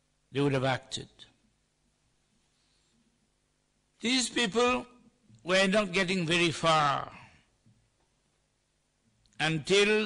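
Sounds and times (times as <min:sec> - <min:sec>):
man speaking amplified: 0:00.3 - 0:01.3, 0:04.0 - 0:07.3, 0:09.4 - 0:10.0.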